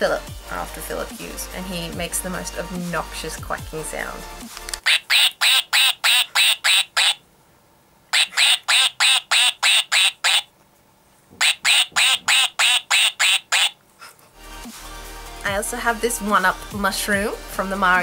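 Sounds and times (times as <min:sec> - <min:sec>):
electronic toy quacking: 0:04.8 - 0:07.2, 0:08.1 - 0:10.5, 0:11.4 - 0:13.8.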